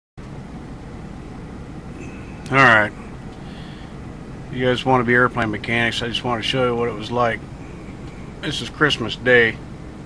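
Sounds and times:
vehicle idling rumble: 0:00.2 - 0:10.0.

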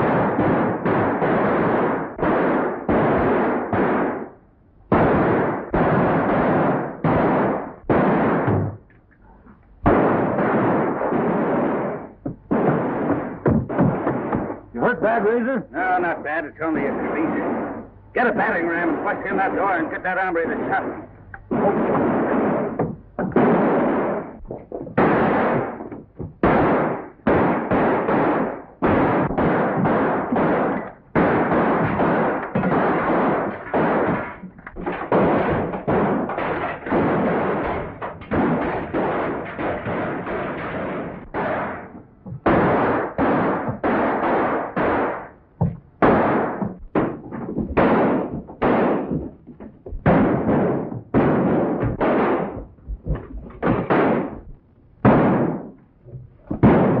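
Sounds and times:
loud gunshots with echo: 0:00.0 - 0:08.9, 0:09.8 - 0:55.8, 0:56.5 - 0:57.0.

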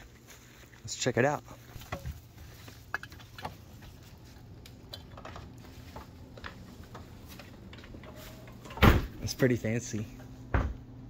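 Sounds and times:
faint steady hum: 0:00.0 - 0:11.0
light clicks and handling noises: 0:01.6 - 0:08.8.

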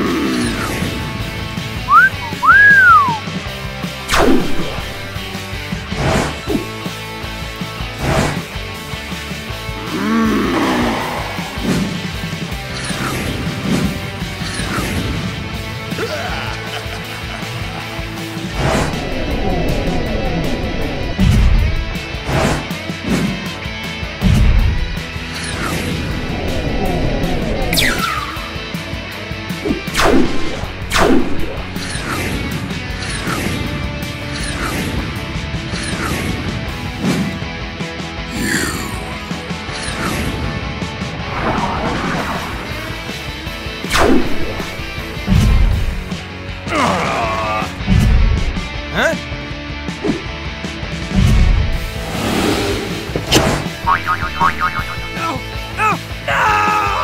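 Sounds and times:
background music: 0:00.0 - 0:57.0
whistle sound effects: 0:01.9 - 0:03.2.

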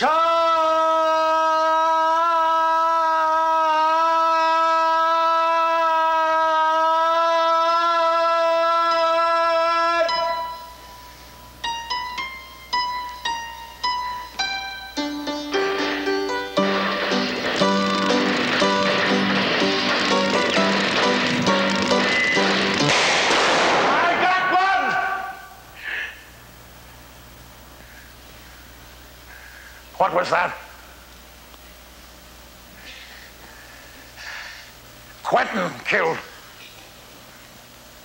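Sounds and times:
man's long held shout: 0:00.0 - 0:10.5, 0:23.9 - 0:25.7
piano notes: 0:11.6 - 0:23.1.

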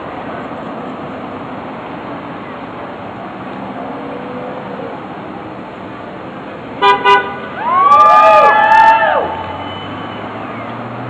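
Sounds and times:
street traffic: 0:00.0 - 0:11.0
car horn honks: 0:06.8 - 0:07.5
people whooping and cheering: 0:07.5 - 0:11.0.

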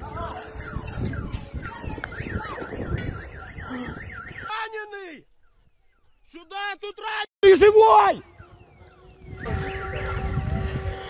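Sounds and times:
car alarm warbling: 0:00.5 - 0:04.6, 0:08.2 - 0:11.0.

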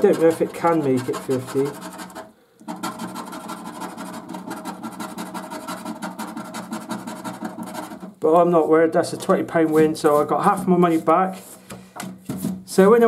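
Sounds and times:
scratchcard coating being scratched: 0:00.0 - 0:11.2.

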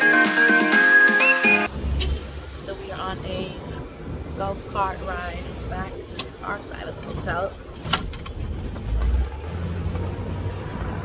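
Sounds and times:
road and wind rumble: 0:01.7 - 0:11.0.

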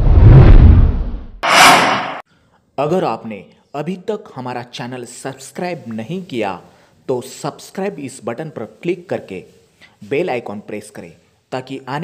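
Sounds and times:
deep whoosh: 0:00.0 - 0:02.2
bright airy swish: 0:01.4 - 0:02.2.

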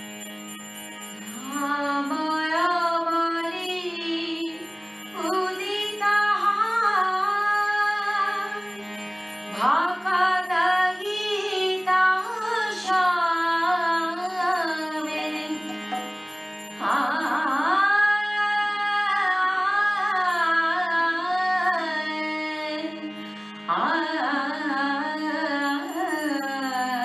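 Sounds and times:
harmonium drone: 0:00.0 - 0:27.0
woman singing devotional song: 0:01.2 - 0:27.0.

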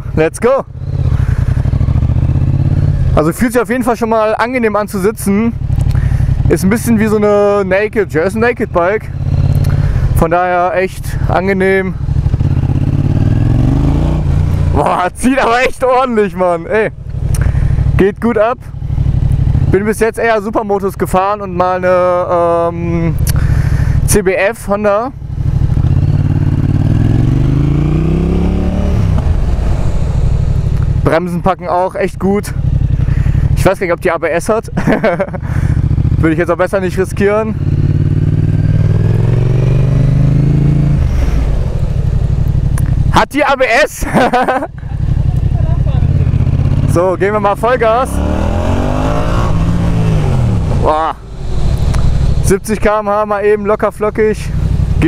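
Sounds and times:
motorcycle engine accelerating: 0:00.0 - 0:55.0.

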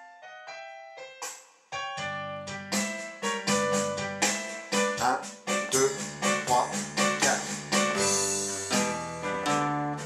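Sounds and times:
boogie-woogie piano: 0:00.0 - 0:10.0.

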